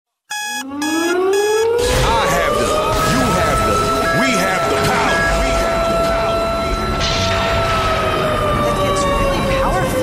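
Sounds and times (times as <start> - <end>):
rising synth sweep: 0.3 - 8.6
alarm-like synth beep: 0.3 - 9.8.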